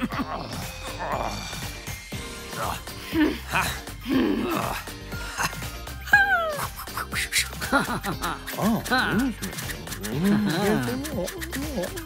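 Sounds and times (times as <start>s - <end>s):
light background music: 0.0s - 12.0s
cartoon chirping sounds: 6.4s - 12.0s.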